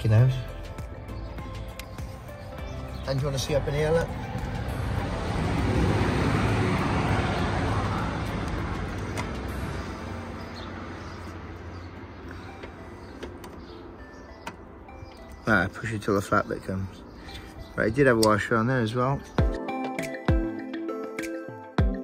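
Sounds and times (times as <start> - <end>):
road vehicle passing: 2.1 - 15.4.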